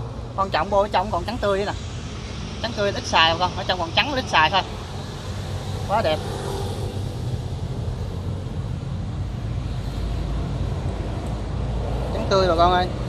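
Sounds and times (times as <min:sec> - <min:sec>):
low engine drone: 0:00.0 - 0:13.0.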